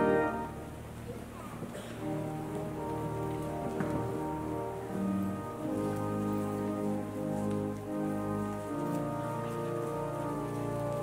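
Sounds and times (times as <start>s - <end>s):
pipe organ sustained chords: 0.0s - 1.2s, 1.8s - 11.0s
congregation rustling and shuffling: 0.0s - 11.0s.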